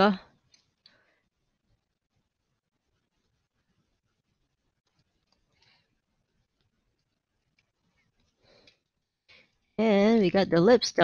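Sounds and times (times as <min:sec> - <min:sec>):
person speaking: 0:00.0 - 0:00.2, 0:09.8 - 0:11.0.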